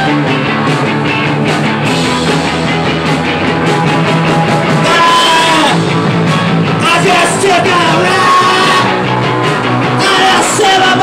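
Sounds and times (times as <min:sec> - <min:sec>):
distorted electric guitar: 0:00.0 - 0:11.0
driving drums: 0:00.0 - 0:11.0
garage rock band playing: 0:00.0 - 0:11.0.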